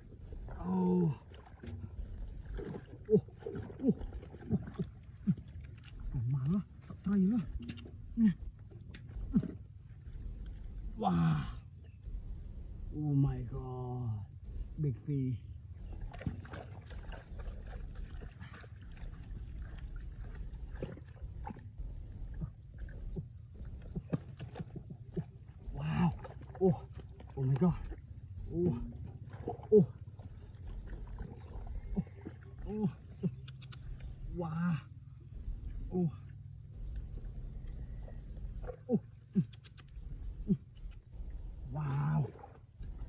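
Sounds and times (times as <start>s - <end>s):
steady low rumble: 0.0s - 43.0s.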